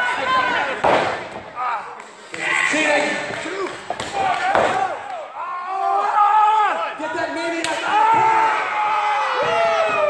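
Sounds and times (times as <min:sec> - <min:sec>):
people shouting: 0:07.8 - 0:10.0.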